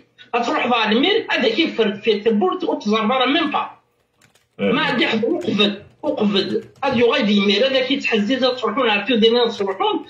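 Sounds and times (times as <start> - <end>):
person talking: 4.6 - 10.0.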